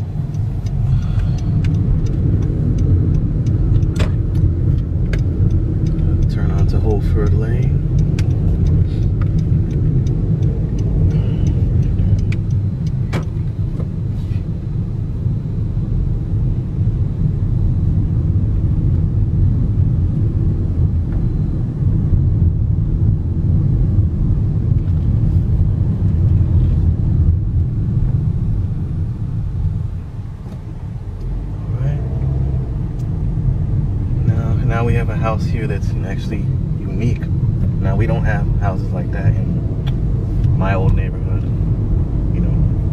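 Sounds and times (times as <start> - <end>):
car interior road noise: 0.0 - 42.9.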